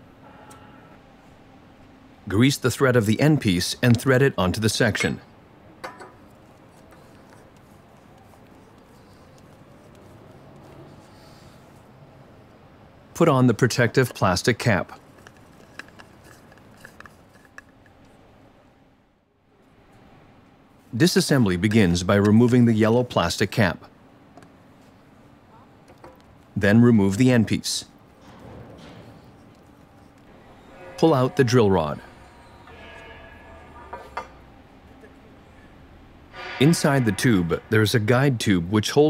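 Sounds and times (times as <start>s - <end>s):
faint rubbing: 6.4s - 11.9s.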